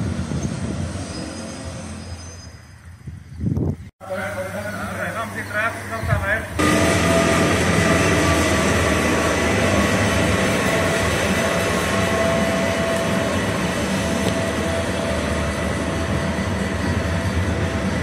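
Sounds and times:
passenger train rumbling past: 0:00.0 - 0:18.0
train whining tones: 0:04.1 - 0:18.0.

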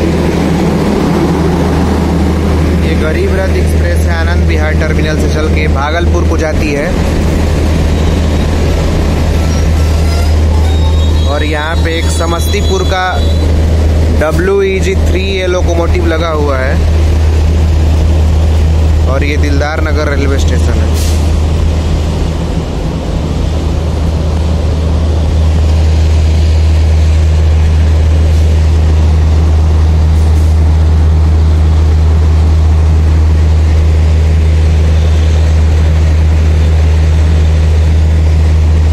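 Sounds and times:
diesel engine rumble: 0:00.0 - 0:38.9
rail noise: 0:00.0 - 0:38.9.

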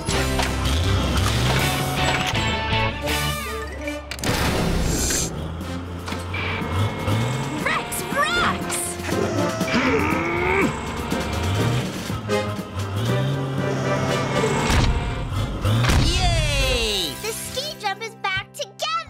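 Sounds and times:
cartoon background music: 0:00.0 - 0:19.0.

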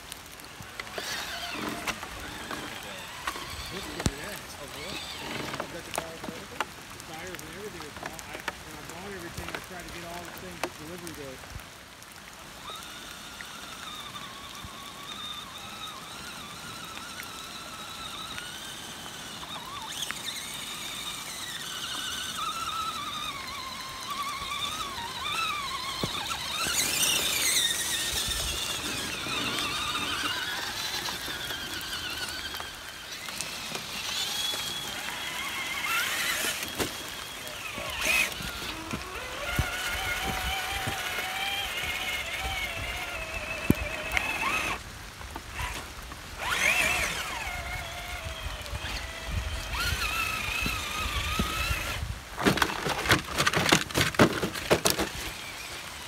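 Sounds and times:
electric motors whining: 0:00.0 - 0:11.4, 0:12.0 - 0:56.0
truck driving through muddy water: 0:00.7 - 0:06.5, 0:12.6 - 0:44.8, 0:46.4 - 0:52.0.

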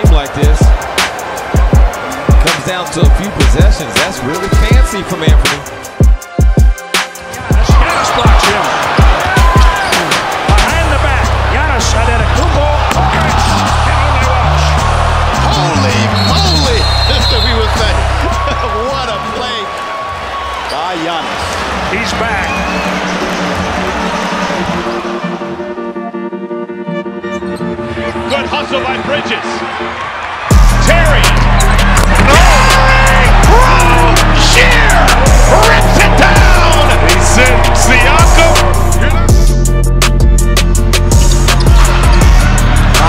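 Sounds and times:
arena crowd noise: 0:00.0 - 0:25.7, 0:27.8 - 0:39.6, 0:40.2 - 0:43.0
music with heavy bass line: 0:30.5 - 0:43.0.

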